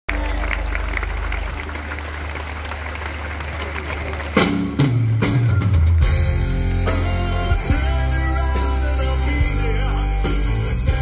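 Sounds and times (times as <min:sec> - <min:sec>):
crowd noise: 0:00.1 - 0:11.0
live rock band playing: 0:04.2 - 0:11.0.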